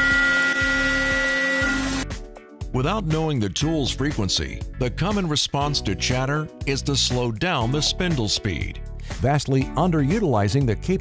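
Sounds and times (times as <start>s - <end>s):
milling cutter squealing: 0.0s - 2.0s
hiss of metal cutting: 0.0s - 2.1s.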